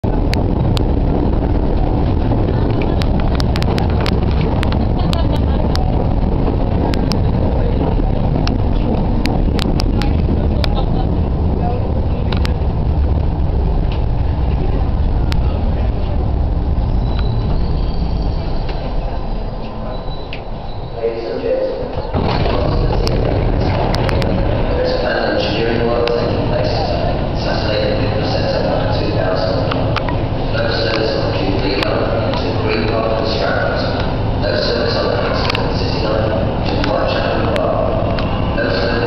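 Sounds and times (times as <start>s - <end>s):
train rumbling in tunnel: 0.0s - 39.0s.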